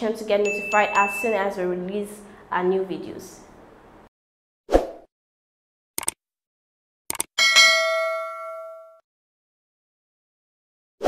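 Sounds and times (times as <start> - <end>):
notification bell ding: 0.4 - 1.6, 7.4 - 9.0.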